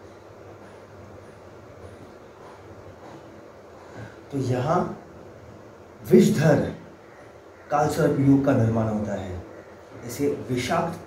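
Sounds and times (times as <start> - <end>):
faint rumble and hiss: 0.0 - 11.0.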